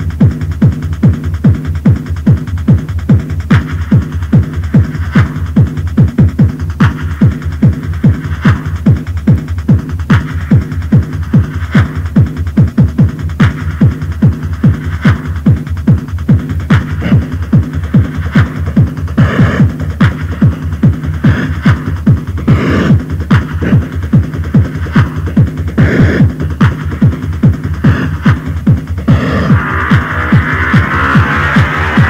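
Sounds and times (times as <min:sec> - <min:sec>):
techno music: 0:00.0 - 0:32.0.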